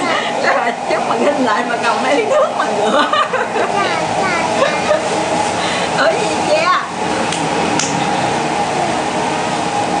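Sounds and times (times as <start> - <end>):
steady hiss and hum: 0.0 - 10.0.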